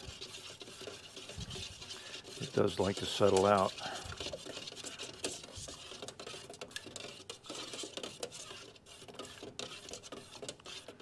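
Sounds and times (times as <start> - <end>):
stir stick scraping in metal can: 0.0 - 11.0.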